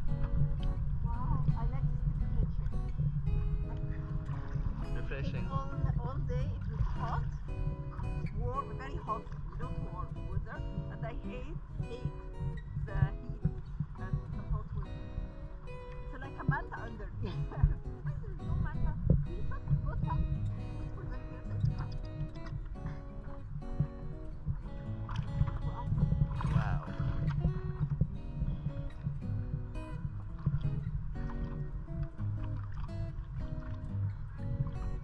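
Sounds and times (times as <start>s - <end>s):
acoustic guitar: 0.0s - 35.0s.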